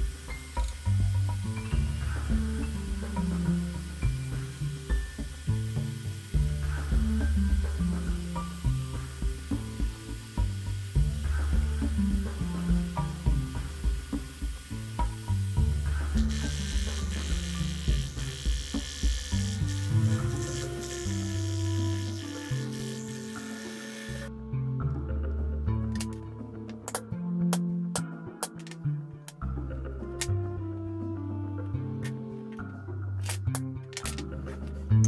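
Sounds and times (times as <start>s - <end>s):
disco background music: 0.0s - 35.0s
scroll saw cutting board: 16.2s - 24.3s.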